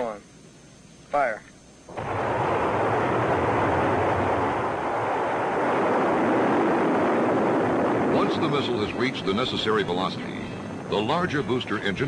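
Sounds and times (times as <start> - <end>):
rocket booster rushing roar: 1.9 - 12.0.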